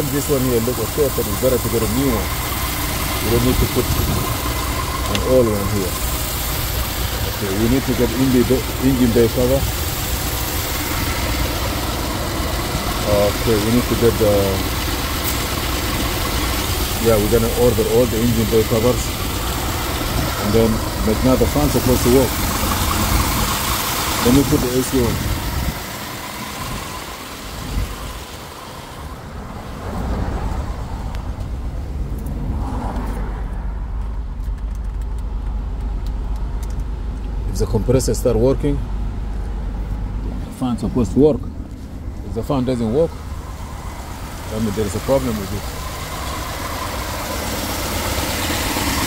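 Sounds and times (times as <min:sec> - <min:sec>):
car engine idling: 0:00.0 - 0:49.0.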